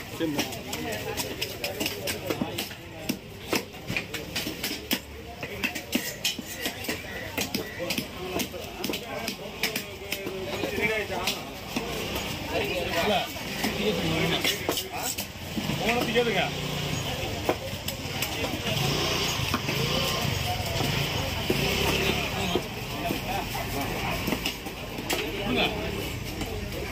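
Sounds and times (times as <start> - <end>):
voices talking: 0.0 - 26.9.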